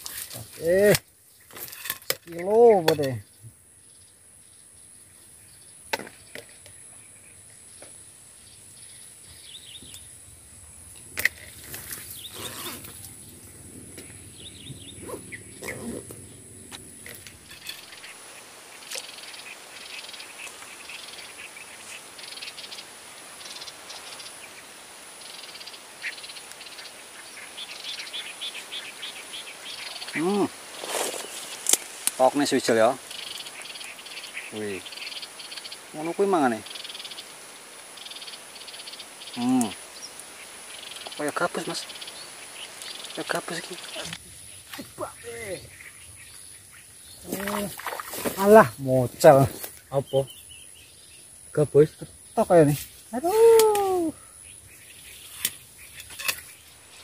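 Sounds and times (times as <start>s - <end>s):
insects chirping: 0.0s - 57.0s
high-pitched insect whine: 2.4s - 57.0s.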